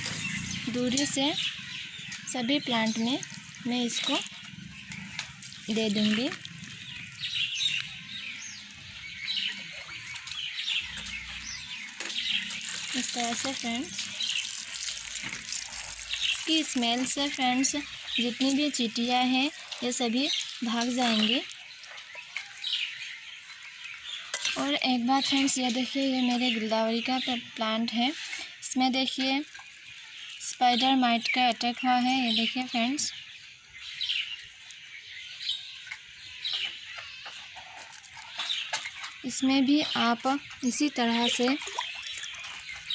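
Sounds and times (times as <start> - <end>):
leaves rustling and clicking: 0.0 - 8.0, 8.6 - 25.8, 28.1 - 32.8, 34.1 - 42.9
small birds chirping: 0.0 - 42.9.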